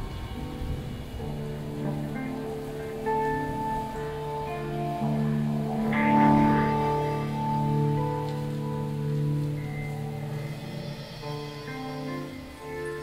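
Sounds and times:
band playing long held notes: 0.0s - 13.0s.

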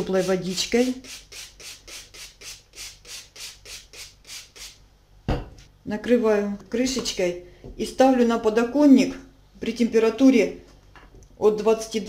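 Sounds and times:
spray bottle hissing spritzes: 0.0s - 4.8s.

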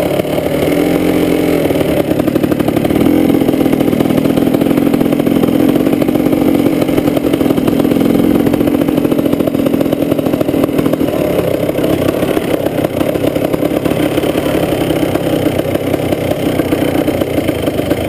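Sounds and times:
two-stroke dirt bike engine: 0.0s - 18.0s.

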